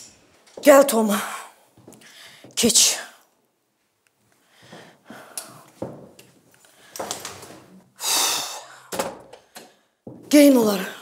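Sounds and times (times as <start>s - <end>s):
heavy breath: 1.3s - 2.6s, 4.4s - 5.8s, 8.0s - 10.0s
footsteps: 1.7s - 2.6s, 3.8s - 7.8s, 9.0s - 10.6s.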